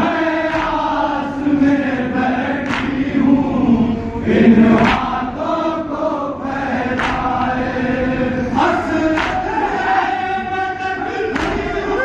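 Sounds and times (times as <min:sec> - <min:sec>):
men chanting a lament: 0:00.0 - 0:12.0
hands slapping chests: 0:00.5 - 0:00.8, 0:02.6 - 0:03.0, 0:04.8 - 0:05.2, 0:07.0 - 0:07.4, 0:09.1 - 0:09.5, 0:11.3 - 0:11.7.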